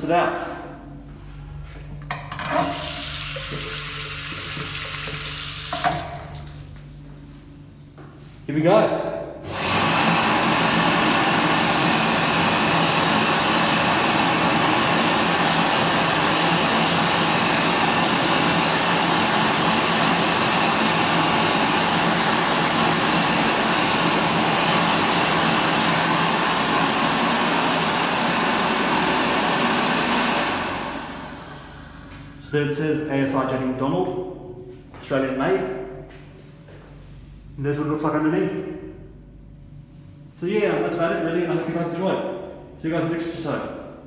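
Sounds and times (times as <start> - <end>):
hand dryer blowing air: 2.4 - 6.4, 9.4 - 32.4.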